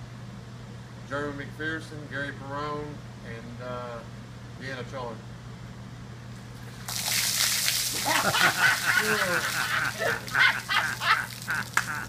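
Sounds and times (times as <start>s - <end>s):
splash of water and ice: 6.7s - 12.0s.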